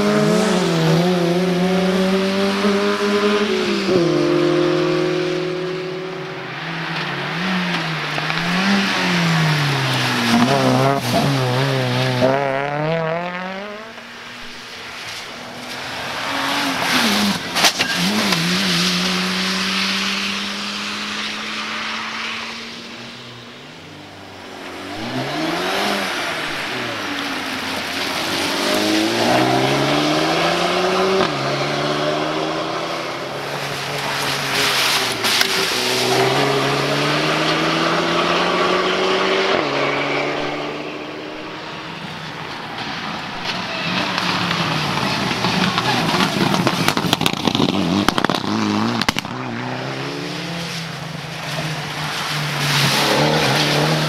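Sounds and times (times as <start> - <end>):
rally car engines revving: 0.0 - 54.0.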